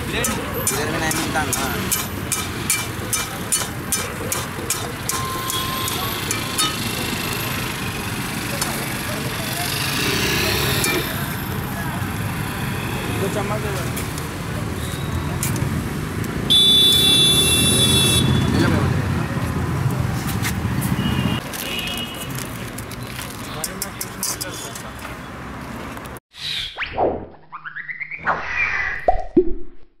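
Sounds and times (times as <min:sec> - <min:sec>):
traffic rumble: 0:00.0 - 0:26.2.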